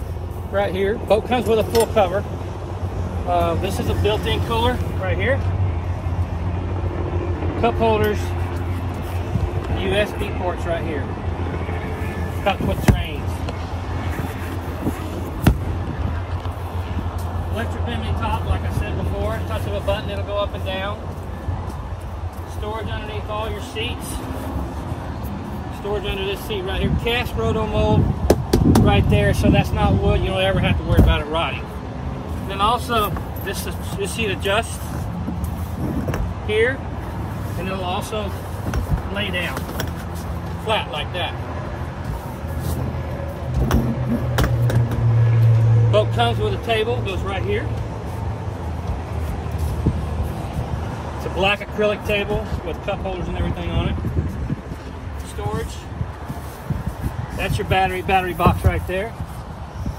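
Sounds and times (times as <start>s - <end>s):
seat backrest clicks and knocks: 43.6s - 45.0s.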